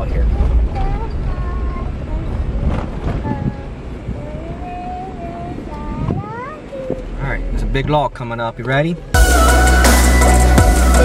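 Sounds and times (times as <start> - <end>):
car driving on bumpy trail: 0.0 - 9.2.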